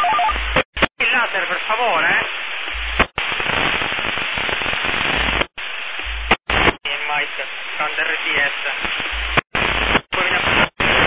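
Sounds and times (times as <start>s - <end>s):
radio static hiss: 0.0s - 11.0s
radio click: 2.6s - 3.3s.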